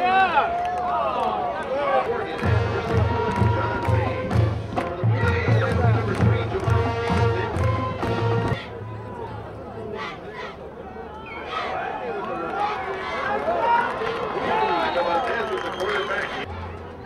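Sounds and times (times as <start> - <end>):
crowd noise: 0.0 - 17.0
music with steady bass beat: 2.4 - 8.6.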